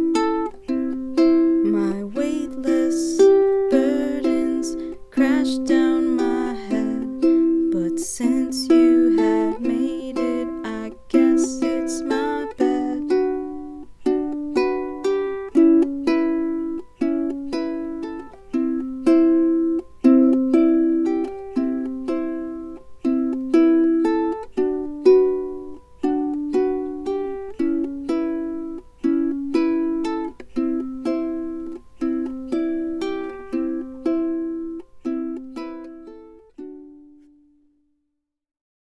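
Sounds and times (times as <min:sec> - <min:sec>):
ukulele strummed chords: 0:00.0 - 0:37.5.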